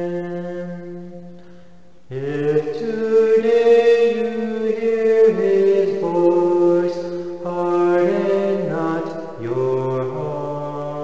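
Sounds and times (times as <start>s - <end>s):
man singing unaccompanied: 0.0s - 1.4s, 2.0s - 11.0s.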